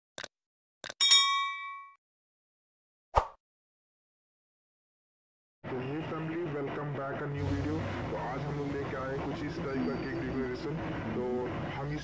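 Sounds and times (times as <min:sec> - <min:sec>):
bright bell ding: 0:01.0 - 0:02.0.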